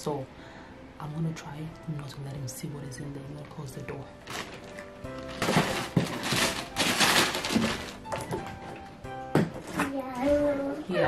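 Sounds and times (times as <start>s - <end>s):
background music: 0.0s - 11.0s
plastic bag rustling and crinkling: 4.2s - 8.8s
cardboard box knocking: 5.4s - 8.7s.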